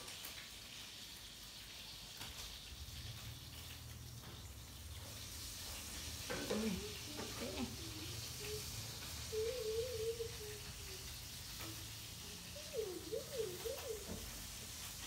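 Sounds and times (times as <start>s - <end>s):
faint steady hiss: 0.0s - 15.0s
baby monkey cooing: 6.7s - 11.1s, 12.2s - 14.1s.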